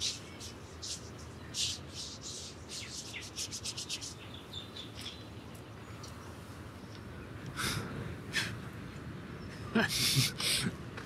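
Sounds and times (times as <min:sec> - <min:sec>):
bird chirps: 0:00.0 - 0:07.4
hand rubbing skin: 0:00.8 - 0:04.2.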